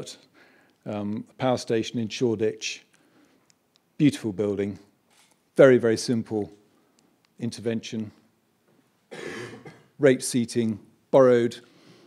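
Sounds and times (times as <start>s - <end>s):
person coughing: 9.1s - 10.0s.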